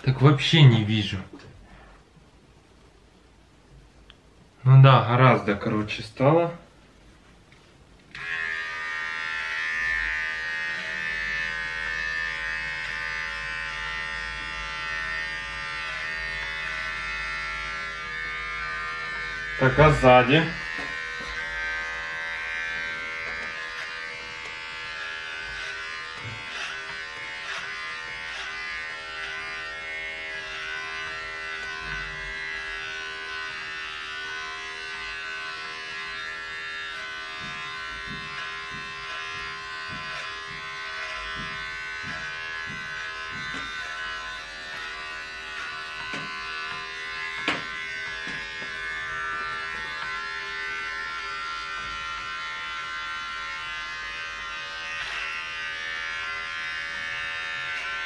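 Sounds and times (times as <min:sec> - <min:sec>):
electric hair clipper buzzing: 0:08.1 - 0:58.0
clipper strokes through hair: 0:35.1 - 0:53.0.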